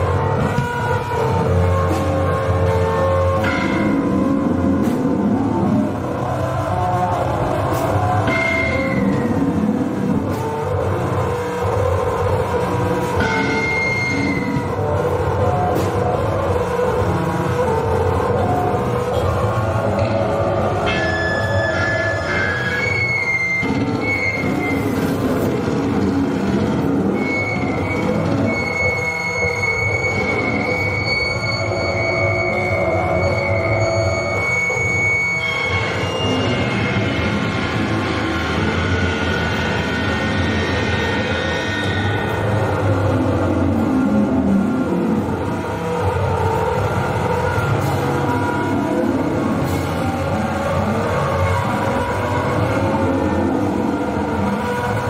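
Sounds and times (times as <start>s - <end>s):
high feedback squeal: 0.0s - 55.0s.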